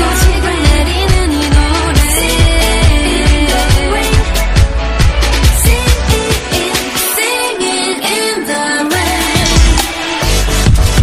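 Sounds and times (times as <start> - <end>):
kick-drum beat: 0.0 - 6.8, 10.5 - 11.0
dance track: 0.0 - 11.0
layered synths: 0.0 - 11.0.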